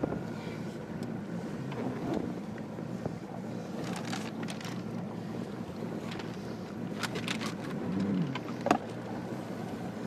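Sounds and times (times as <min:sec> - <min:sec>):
outboard motor idling: 0:00.0 - 0:10.0.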